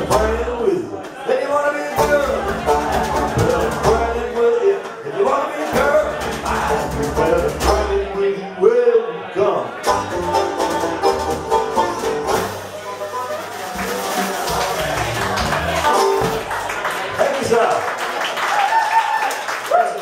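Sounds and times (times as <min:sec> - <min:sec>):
upright bass: 0:00.0 - 0:01.0, 0:01.9 - 0:08.4, 0:09.8 - 0:17.3
drums: 0:00.0 - 0:01.3, 0:01.9 - 0:08.2, 0:09.8 - 0:17.2
banjo: 0:00.0 - 0:08.9, 0:09.6 - 0:17.6.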